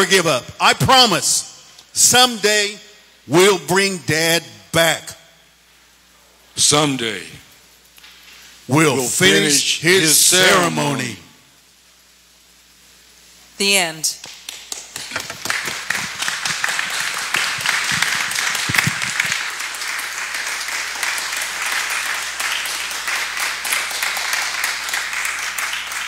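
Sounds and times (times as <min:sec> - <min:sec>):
audience applauding: 0:14.2 - 0:26.0.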